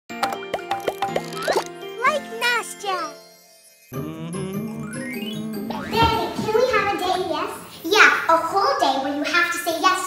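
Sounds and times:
bright children's music jingle: 1.2 - 6.7
sliding voice-like notes: 3.9 - 6.5.

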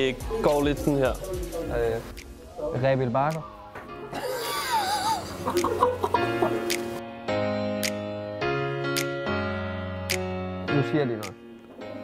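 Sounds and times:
background music with held tones: 0.0 - 12.0
man laughing: 4.2 - 6.7.

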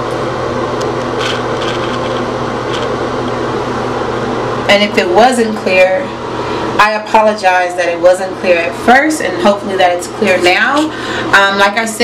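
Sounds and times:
room hum and hiss: 0.0 - 12.0
camera handling rubbing: 1.2 - 2.9.

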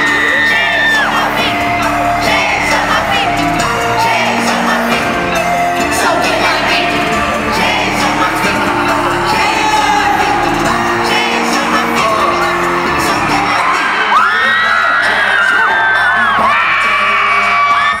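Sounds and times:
long high sliding notes: 0.0 - 14.4
crowd whooping and singing along: 0.0 - 18.0
live pop music over sound system: 0.0 - 18.0.

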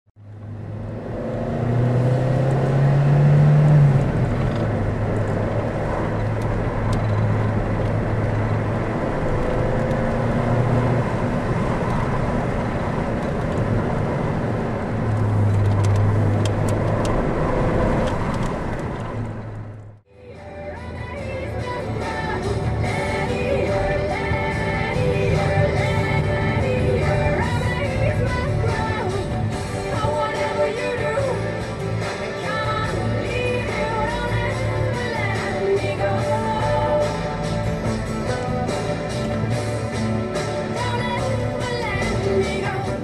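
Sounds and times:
car engine: 0.2 - 43.0.

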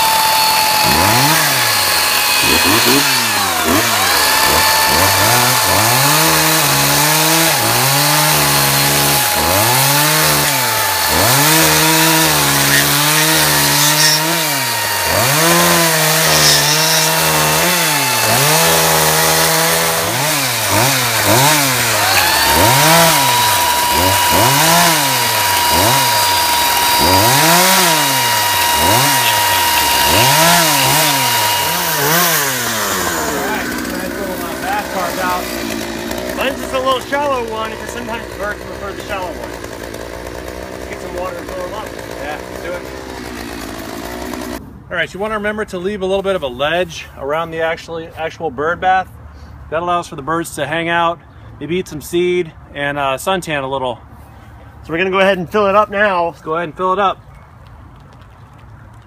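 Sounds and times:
electric chainsaw whine: 0.0 - 44.6
gas chainsaw revving: 0.0 - 44.6.

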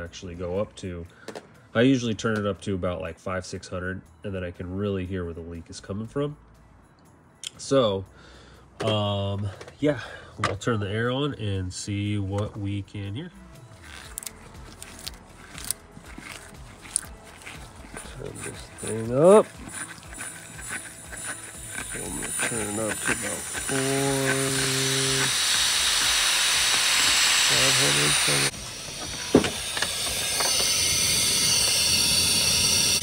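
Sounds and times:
compressed air hissing: 13.8 - 33.0.

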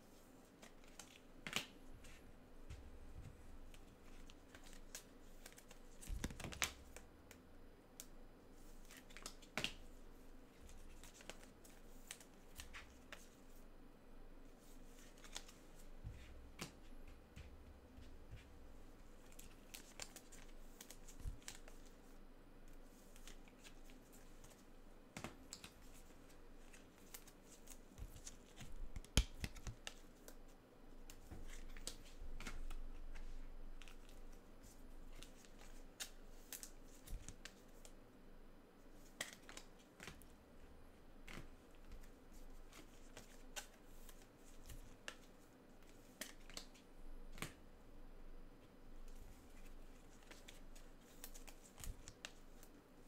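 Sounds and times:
hands handling trading cards: 0.6 - 7.4, 10.7 - 13.3, 14.6 - 18.5, 19.2 - 22.0, 23.0 - 30.5, 31.1 - 38.0, 39.0 - 40.3, 41.2 - 47.6, 49.1 - 52.8.

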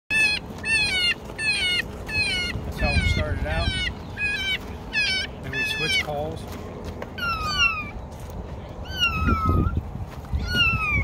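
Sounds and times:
high-pitched animal distress cries: 0.1 - 6.3, 7.2 - 8.0, 8.8 - 11.0.

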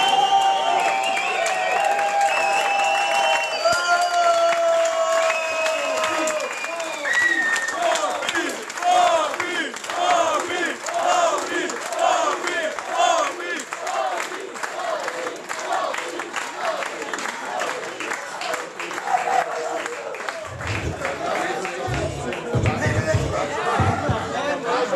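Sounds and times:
crowd cheering and shouting: 0.0 - 11.4, 16.5 - 24.9
crowd chanting: 7.8 - 24.9.

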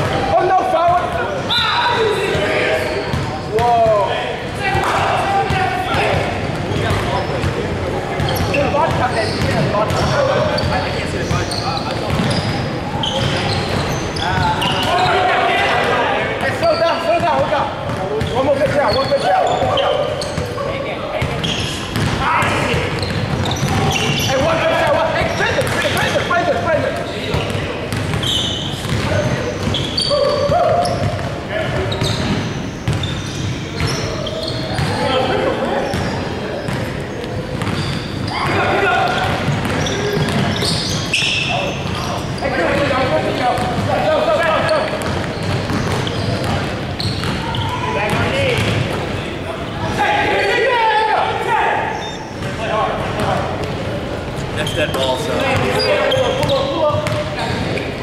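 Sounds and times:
players shouting: 0.0 - 7.3, 12.3 - 17.6, 29.1 - 32.2, 37.8 - 53.6
basketball bouncing on wooden court: 8.2 - 14.8, 21.2 - 24.6, 27.3 - 35.0, 37.5 - 40.9, 44.8 - 49.0, 56.4 - 57.7.

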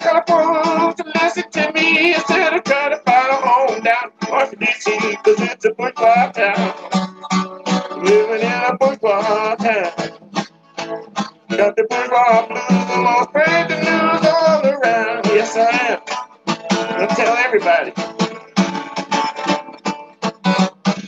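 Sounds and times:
man singing: 0.0 - 7.0, 7.7 - 10.2, 11.5 - 18.8
acoustic guitar plucked: 0.0 - 21.0.

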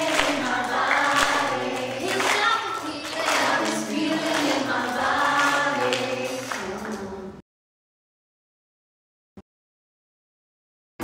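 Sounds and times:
backing music: 0.0 - 7.4
children's choir singing: 0.0 - 7.4.

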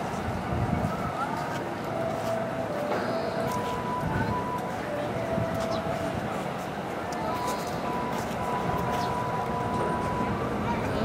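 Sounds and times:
freight train wheels rumbling on rail: 0.0 - 11.0.

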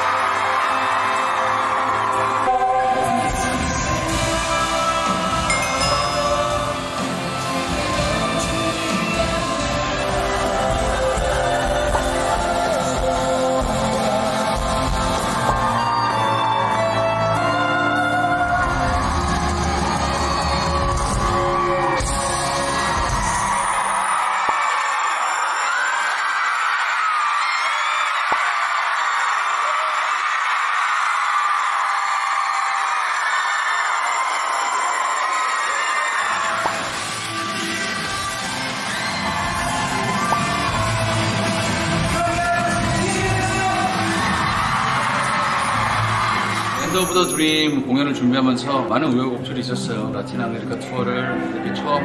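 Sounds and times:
audience screaming and cheering: 0.0 - 48.0
live rock band: 0.2 - 23.6.

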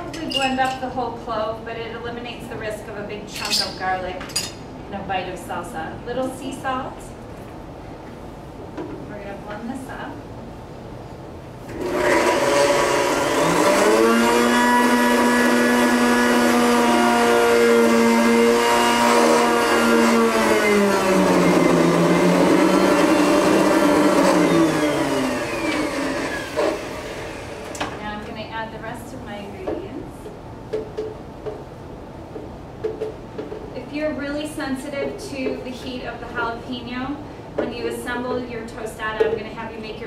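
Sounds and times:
blender motor running: 11.7 - 27.9.

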